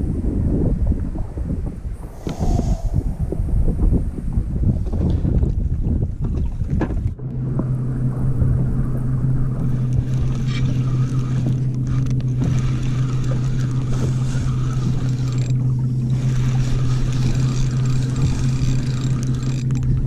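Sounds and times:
wind buffeting microphone: 0.0s - 20.0s
outboard motor idling: 7.2s - 20.0s.

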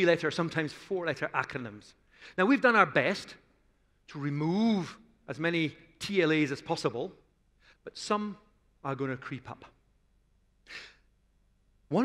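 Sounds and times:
man speaking: 0.0s - 3.4s, 4.1s - 9.8s.

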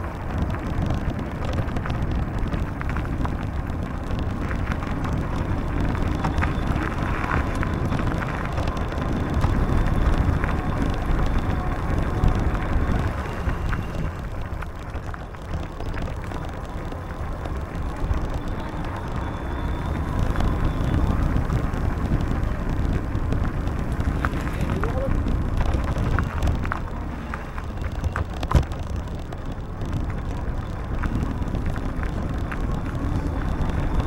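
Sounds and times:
bicycle tyres rolling on asphalt: 0.0s - 34.0s
wind on microphone: 0.0s - 34.0s.

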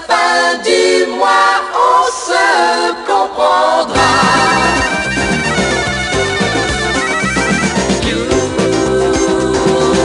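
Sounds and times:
instrumental pop music: 0.1s - 10.0s.

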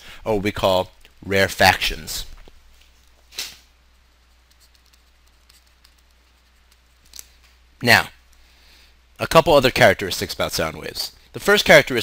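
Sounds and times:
steady low hum: 0.0s - 11.4s
short breath: 8.4s - 9.0s.

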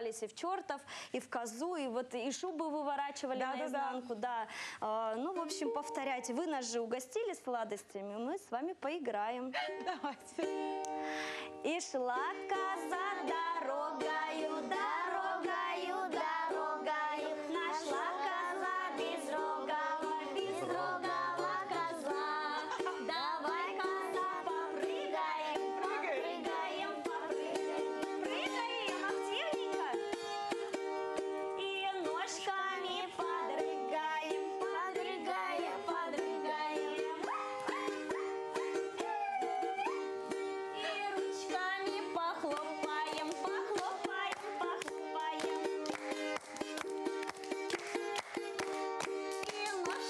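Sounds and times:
balalaika playing: 12.2s - 50.0s
children singing: 12.5s - 29.1s, 32.4s - 40.1s.

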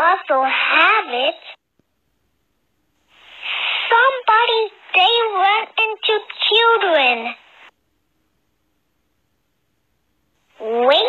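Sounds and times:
breathy hiss: 3.0s - 6.5s
high-pitched cartoon voice speaking: 3.9s - 7.4s, 10.6s - 11.0s.

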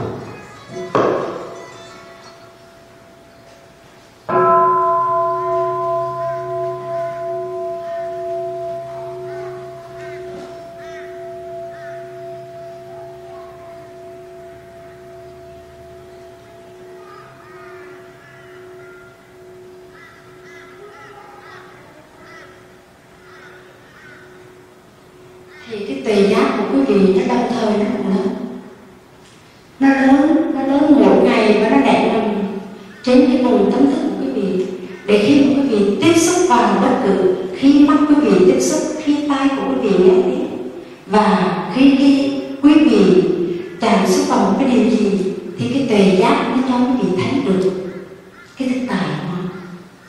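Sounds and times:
meditation bowl bell ringing: 0.9s - 21.4s, 23.7s - 29.1s, 30.3s - 45.6s.

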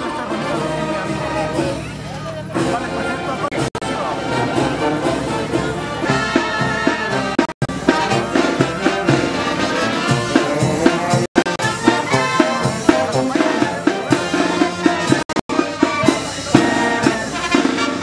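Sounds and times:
brass band playing a march: 0.0s - 18.0s.

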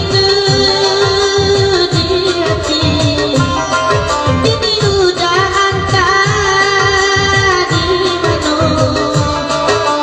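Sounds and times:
repeating drum beat: 0.0s - 10.0s
woman singing into a microphone: 0.0s - 10.0s.

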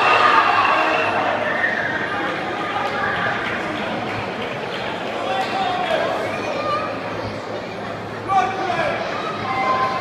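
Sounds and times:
crowd chatter in a large hall: 0.0s - 10.0s.

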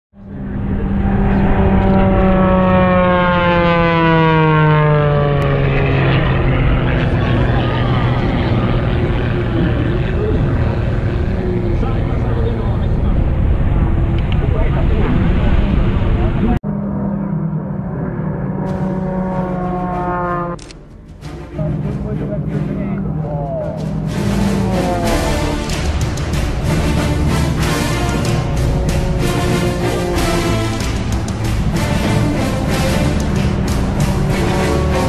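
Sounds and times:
propeller plane engine passing: 0.2s - 35.0s
steady engine drone: 0.2s - 35.0s.

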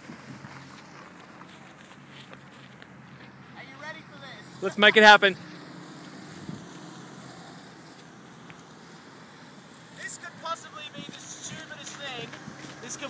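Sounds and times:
people talking: 3.6s - 5.4s, 10.0s - 13.0s.

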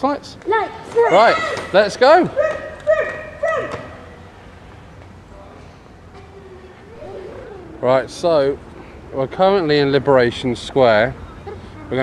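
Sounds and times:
background hum: 2.2s - 12.0s
child's high-pitched calls: 6.3s - 8.1s.

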